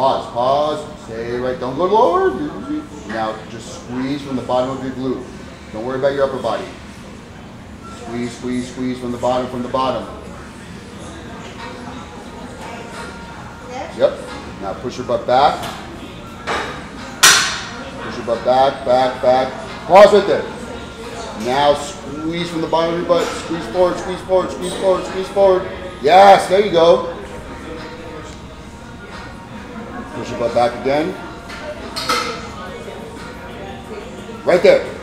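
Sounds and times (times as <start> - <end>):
faint music: 0.0 - 35.0.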